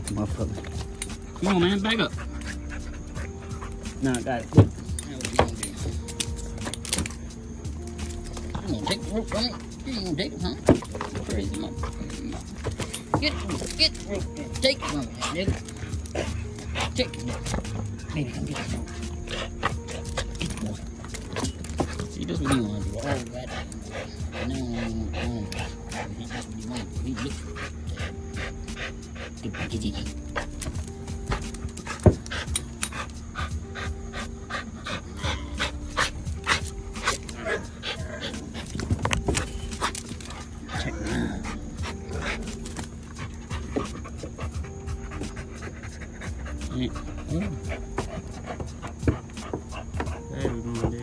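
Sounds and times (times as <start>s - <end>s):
background music: 0.0s - 51.0s
dog panting: 0.0s - 51.0s.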